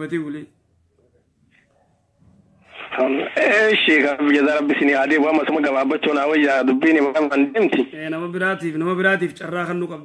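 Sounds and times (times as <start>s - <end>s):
man speaking: 2.9s - 10.0s.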